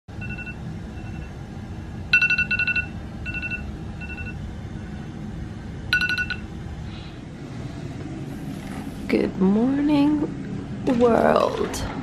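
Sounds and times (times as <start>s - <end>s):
low steady hum: 0.1s - 12.0s
smartphone alarm beeping: 0.2s - 1.3s, 2.1s - 4.4s, 5.9s - 6.4s.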